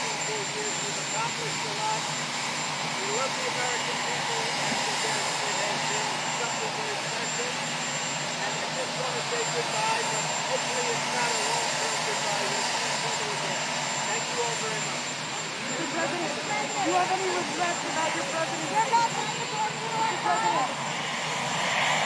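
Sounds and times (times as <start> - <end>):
faint voices: 0.0 - 22.0
helicopter turbines running: 0.0 - 22.0.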